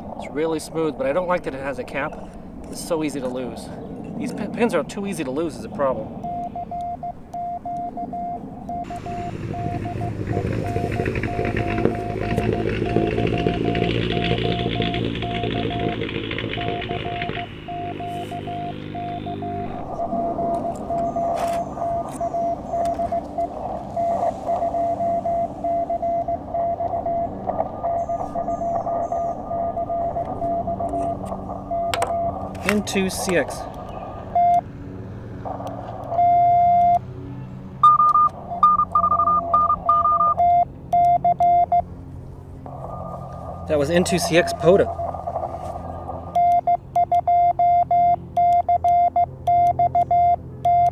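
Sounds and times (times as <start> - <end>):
low hum: 0.0 - 50.9
morse code tone: 6.2 - 32.5, 34.4 - 34.6, 36.2 - 37.0, 37.8 - 41.8, 46.3 - 50.9.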